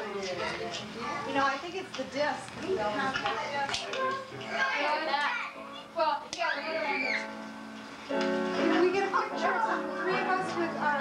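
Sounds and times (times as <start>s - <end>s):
people talking and calling out: 0.0s - 7.8s, 8.5s - 11.0s.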